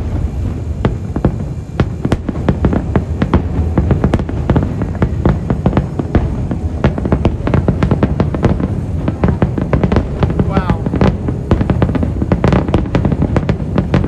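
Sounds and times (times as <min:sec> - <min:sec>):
continuous low rumble: 0:00.0 - 0:14.0
fireworks bursting: 0:00.0 - 0:14.0.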